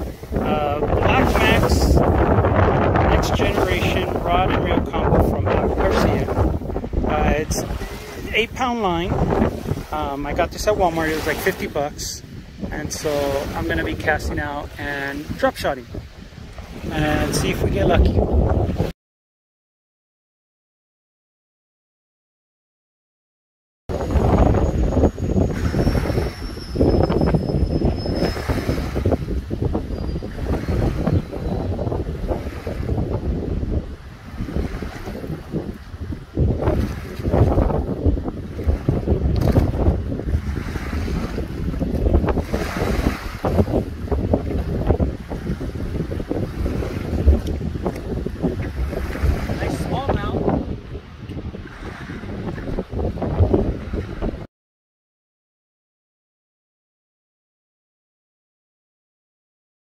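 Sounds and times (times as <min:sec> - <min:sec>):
wind buffeting microphone: 0:00.0 - 0:18.9, 0:23.9 - 0:54.5
small waves lapping: 0:05.7 - 0:08.5, 0:09.1 - 0:13.8, 0:38.3 - 0:52.8.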